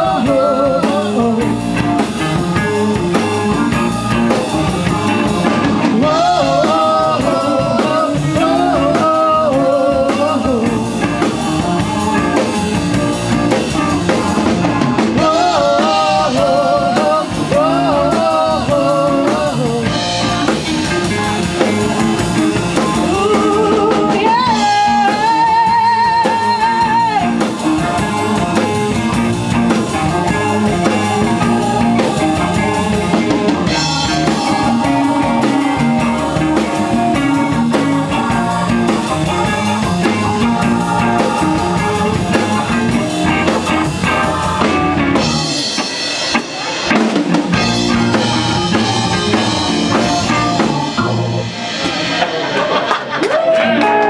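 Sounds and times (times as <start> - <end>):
bass guitar: 0.0 - 54.0
drum kit: 0.0 - 54.0
electric guitars: 0.0 - 54.0
keyboard: 0.0 - 54.0.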